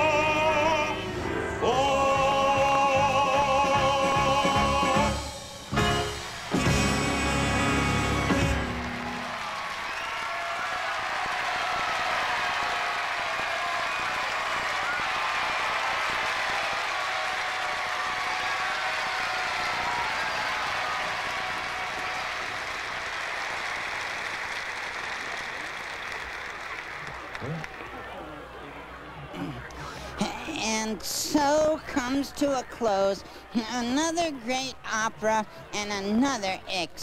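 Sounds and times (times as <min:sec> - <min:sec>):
opera singing with accompaniment: 0:00.0 - 0:05.5
audience applause: 0:05.9 - 0:30.1.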